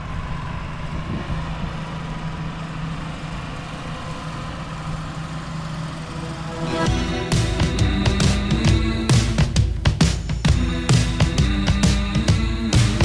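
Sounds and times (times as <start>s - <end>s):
tractor engine running: 0.0s - 13.0s
rock music: 6.1s - 13.0s.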